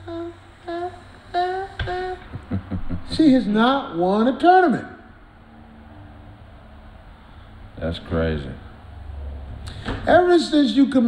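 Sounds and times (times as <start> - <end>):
person humming notes: 0.0 - 2.8.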